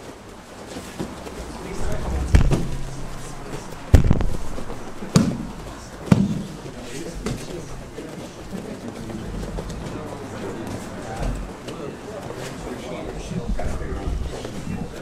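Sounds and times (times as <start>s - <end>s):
murmur of voices: 1.0s - 15.0s.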